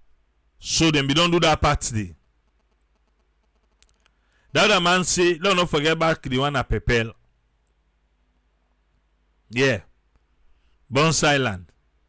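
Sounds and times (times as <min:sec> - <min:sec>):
low steady hum: 0:00.0 - 0:12.0
man speaking: 0:00.6 - 0:02.2, 0:04.5 - 0:07.2, 0:09.5 - 0:10.0, 0:10.9 - 0:11.7.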